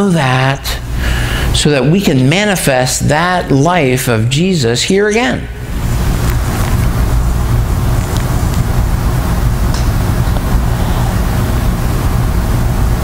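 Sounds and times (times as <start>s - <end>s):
low rumbling noise: 0.0s - 13.0s.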